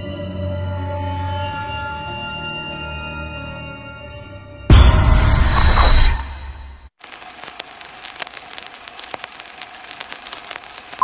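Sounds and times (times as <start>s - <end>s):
film soundtrack crackle and hiss: 5.5s - 11.0s.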